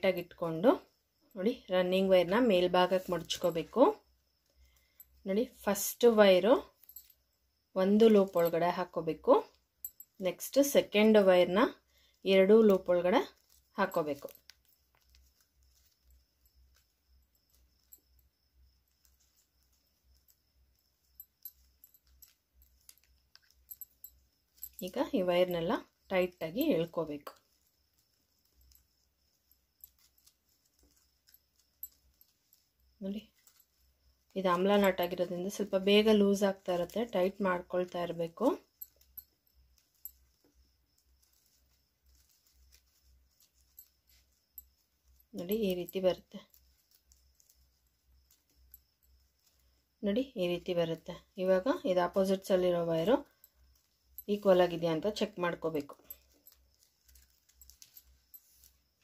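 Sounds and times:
person speaking: 0:00.0 - 0:04.0, 0:07.8 - 0:09.5, 0:10.2 - 0:14.4, 0:24.8 - 0:27.4, 0:34.3 - 0:38.7, 0:45.3 - 0:46.5, 0:54.2 - 0:56.1
plastic wire clicks and rustles: 0:55.9 - 0:59.0.

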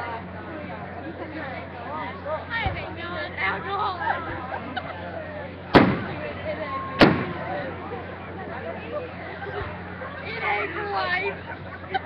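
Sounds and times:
crowd chatter: 0:00.0 - 0:12.0
firework shell bang: 0:05.7 - 0:06.2, 0:07.0 - 0:07.5.

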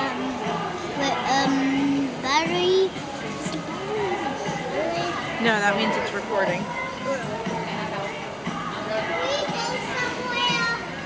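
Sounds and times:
busy room background noise: 0:00.0 - 0:11.0.

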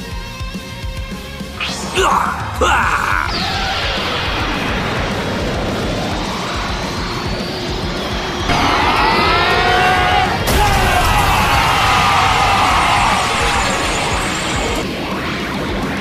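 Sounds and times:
background music: 0:00.0 - 0:16.0
energy blast rush with rising whine: 0:01.4 - 0:16.0
character screaming: 0:01.6 - 0:04.0, 0:08.5 - 0:14.2.

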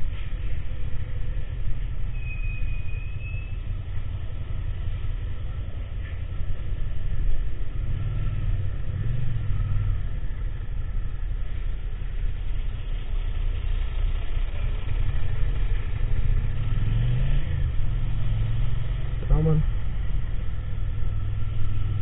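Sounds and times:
wind and road noise: 0:00.0 - 0:22.0
motorcycle engine running: 0:03.5 - 0:22.0.

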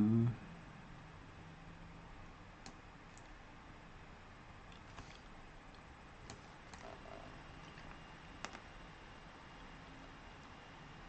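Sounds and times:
faint clicks: 0:04.7 - 0:08.7.

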